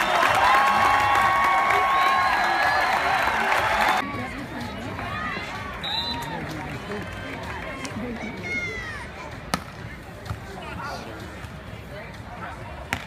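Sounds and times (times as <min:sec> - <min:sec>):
crowd chattering and calling out: 0:00.0 - 0:13.0.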